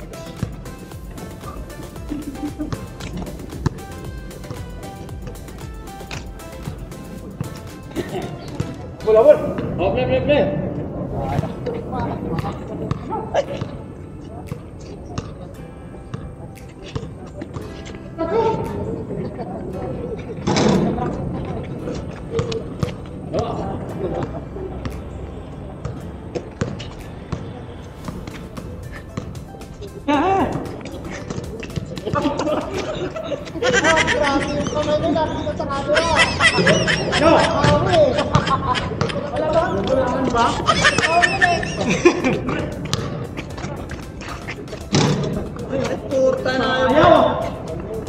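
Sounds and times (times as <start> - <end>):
basketball bouncing on concrete: 0.3 - 1.6, 2.5 - 7.6, 42.8 - 45.3
players calling out: 28.3 - 48.0.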